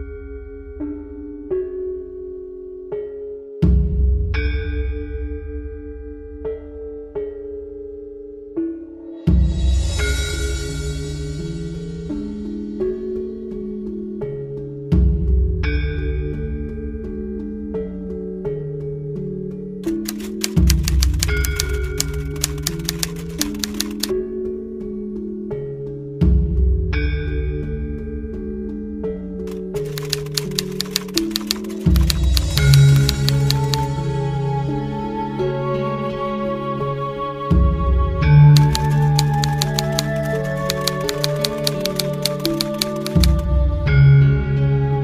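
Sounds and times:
slow music with drone and bells: 0.0 - 19.7, 24.2 - 29.3
typewriter key clicks: 19.9 - 24.1, 29.5 - 33.9, 38.6 - 43.4.

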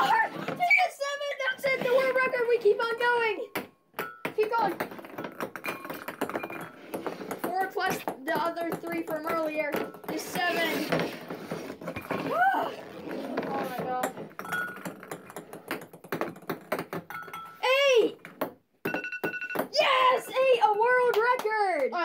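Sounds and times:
ping-pong balls knocking on glass: 3.5 - 10.5, 14.0 - 19.8
electronic timer beeping: 18.9 - 19.6.

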